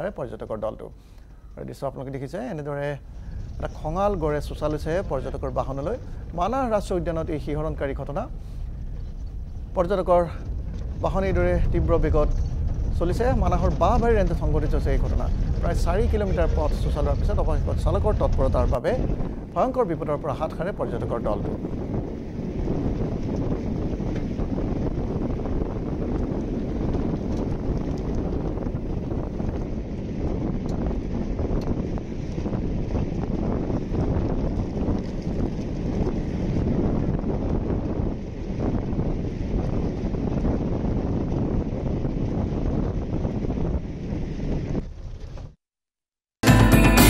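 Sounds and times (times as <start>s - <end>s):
wind buffeting microphone: 0.0s - 45.6s
vehicle engine and road noise: 2.2s - 45.6s.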